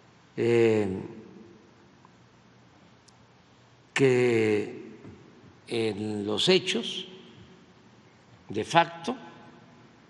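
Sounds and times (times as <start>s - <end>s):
man speaking: 0.4s - 1.4s, 3.9s - 7.3s, 8.5s - 9.6s.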